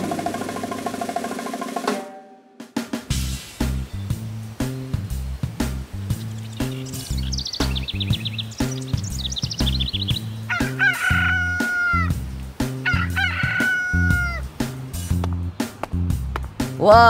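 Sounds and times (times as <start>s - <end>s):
background music with steady beat: 0.0s - 17.0s
high bird twittering: 5.7s - 12.2s
rooster crowing: 10.5s - 14.5s.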